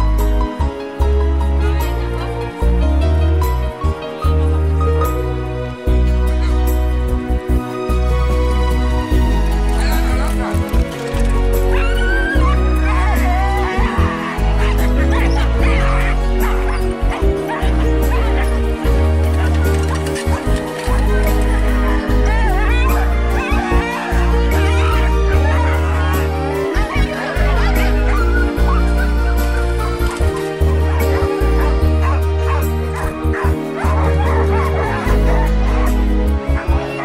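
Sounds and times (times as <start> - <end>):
music with heavy bass: 5.9 - 37.0
sled dogs barking and yipping: 7.7 - 37.0.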